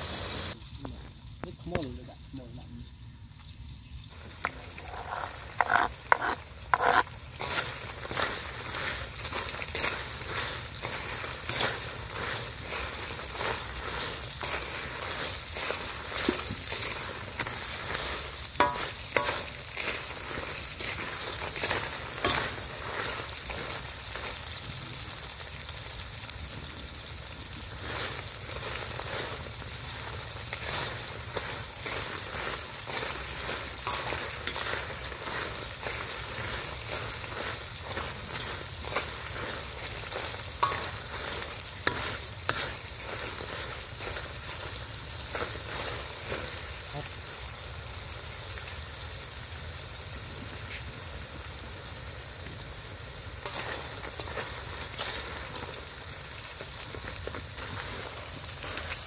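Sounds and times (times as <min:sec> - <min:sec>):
beetles sizzling in a wok: 0:00.0 - 0:59.0
metal spatula scraping a wok: 0:04.2 - 0:24.5, 0:27.8 - 0:46.7, 0:53.4 - 0:55.8.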